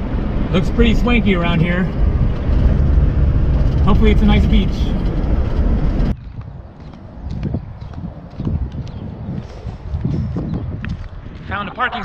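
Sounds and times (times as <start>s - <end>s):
car cabin road and engine rumble: 0.0s - 8.7s
wind on microphone: 0.0s - 12.0s
footsteps on sidewalk: 1.8s - 12.0s.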